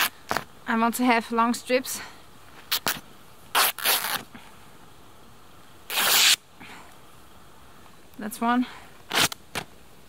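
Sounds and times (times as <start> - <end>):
fabric ripping: 2.7 - 4.2, 5.9 - 6.4, 9.1 - 9.4.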